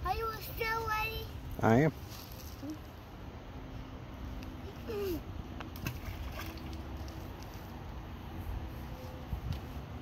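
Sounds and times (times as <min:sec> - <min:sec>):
rock splashing into creek: 0:05.7 - 0:06.8.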